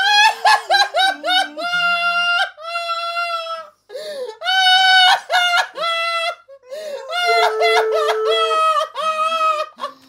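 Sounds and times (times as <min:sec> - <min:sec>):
high-pitched squealing laughter: 0:04.5 - 0:10.0.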